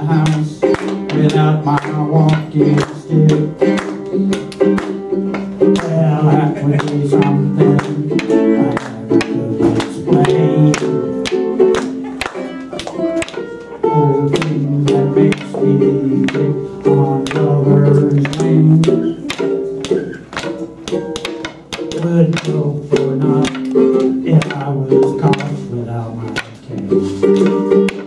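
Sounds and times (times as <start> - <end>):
guitar notes: 0.0 - 28.0.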